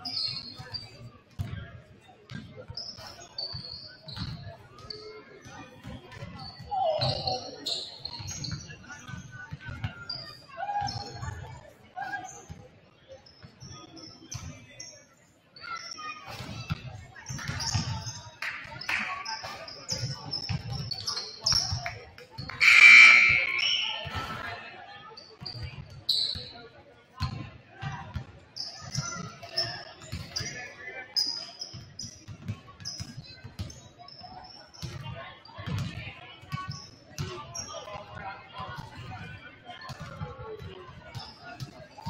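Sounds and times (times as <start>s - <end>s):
shoe squeaks: 0.0s - 1.0s, 6.4s - 8.8s, 19.7s - 21.8s, 22.6s - 24.5s.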